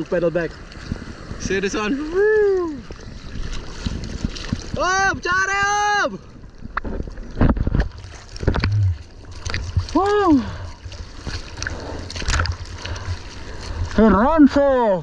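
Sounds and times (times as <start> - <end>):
water splashing against surfboard: 0.0 - 5.2, 6.5 - 15.0
low rumble of water: 0.0 - 15.0.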